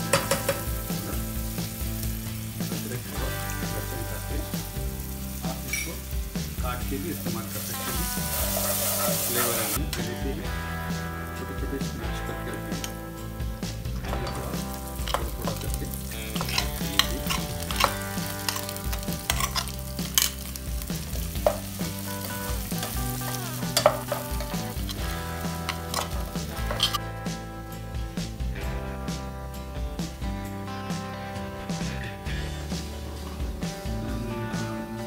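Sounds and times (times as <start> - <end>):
potatoes sizzling in oil: 0.0 - 27.1
spatula knocking against pan: 0.1 - 0.7
spatula stirring mashed potatoes: 14.1 - 27.0.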